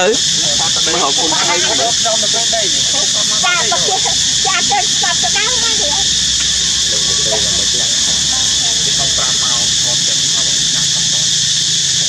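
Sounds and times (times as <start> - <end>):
people talking: 0.0 - 11.8
high-pitched hiss: 0.0 - 12.0.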